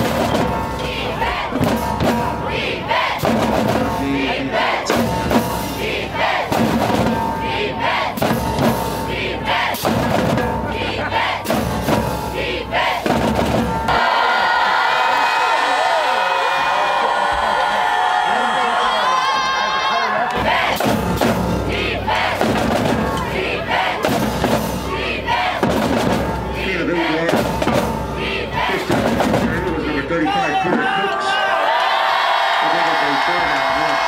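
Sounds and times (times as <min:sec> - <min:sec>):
marching band playing: 0:00.0 - 0:15.4, 0:19.2 - 0:31.1
group shouting a chant: 0:13.9 - 0:20.8, 0:30.4 - 0:34.0
loud shouts: 0:13.9 - 0:20.8, 0:30.2 - 0:34.0
band members shouting a chant: 0:28.2 - 0:34.0.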